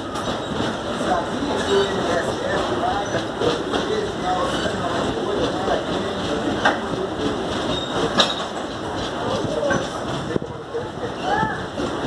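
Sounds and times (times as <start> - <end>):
train wheels rolling on rails: 0.0 - 12.0.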